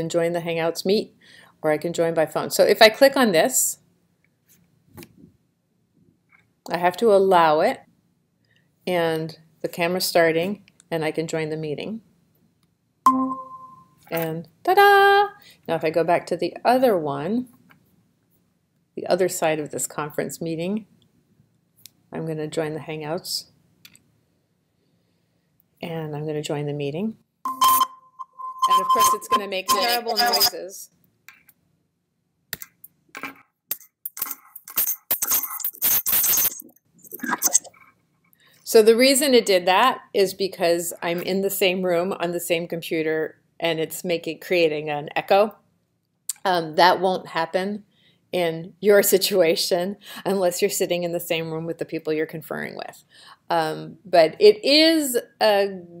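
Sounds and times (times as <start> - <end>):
bright electronic chime: 13.1 - 14.0, 27.5 - 30.5
harsh audio feedback bursts: 27.5 - 30.6, 35.3 - 37.6.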